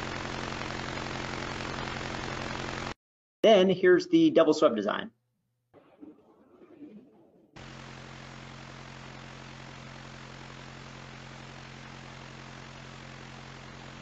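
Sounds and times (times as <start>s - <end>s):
rotor whirring with low hum: 0.0s - 3.0s, 7.6s - 14.0s
person speaking: 3.4s - 5.1s.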